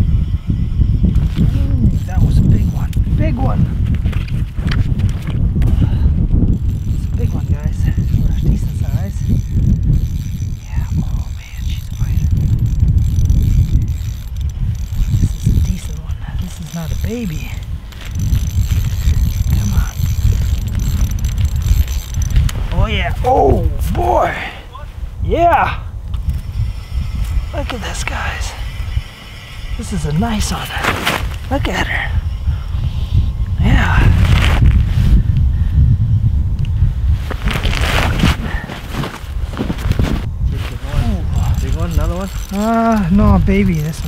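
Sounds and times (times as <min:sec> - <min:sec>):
fishing reel clicking: 0:00.0 - 0:03.1, 0:06.5 - 0:22.9, 0:26.2 - 0:30.5, 0:41.2 - 0:44.0
wind rumble on microphone: 0:00.0 - 0:44.0
man's wordless vocal sounds: 0:22.8 - 0:24.8.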